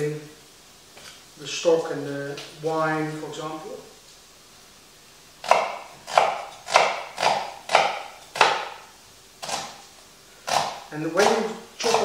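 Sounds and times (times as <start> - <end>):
knife chopping on wooden board: 5.4 - 8.8, 9.4 - 9.8, 10.5 - 12.0.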